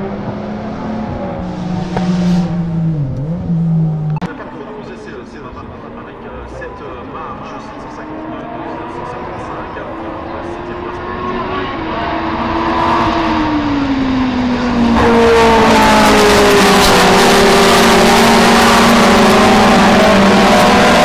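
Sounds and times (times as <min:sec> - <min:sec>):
race car engines passing: 0:00.0 - 0:21.0.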